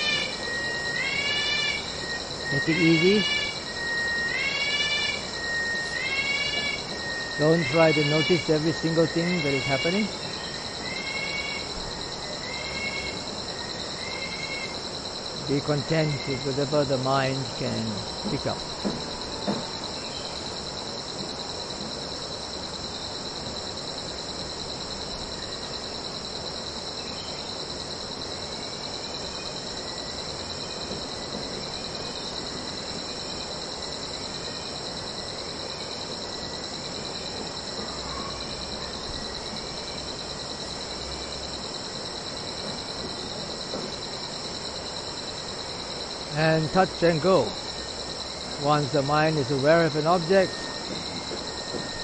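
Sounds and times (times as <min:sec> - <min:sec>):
insects trilling: 0:00.0 - 0:52.0.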